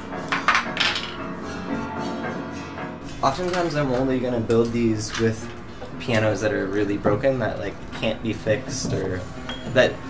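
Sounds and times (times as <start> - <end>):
piano strings struck metallically: 0.0 - 10.0
ringing piano tones: 0.0 - 10.0.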